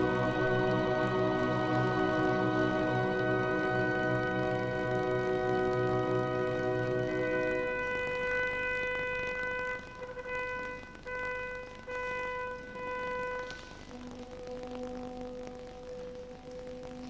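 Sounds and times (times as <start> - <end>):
soft low held notes: 0.0 - 17.0
wind instrument high held note: 6.7 - 14.1.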